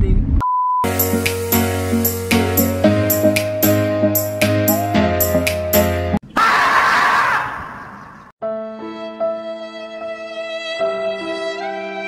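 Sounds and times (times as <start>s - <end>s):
music: 0.8s - 6.2s, 8.4s - 12.0s
long drawn-out scream: 6.3s - 8.1s.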